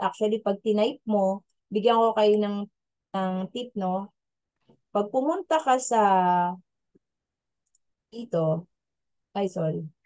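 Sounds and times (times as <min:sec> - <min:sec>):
faint clicks: 0:07.0 - 0:07.9.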